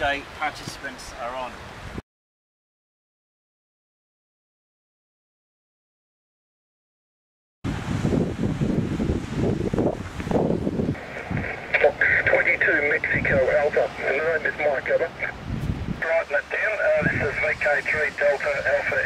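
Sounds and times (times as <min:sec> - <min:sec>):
wind buffeting microphone: 0:07.6 - 0:19.0
tinny voice over radio speaker: 0:11.0 - 0:15.3, 0:16.0 - 0:19.0.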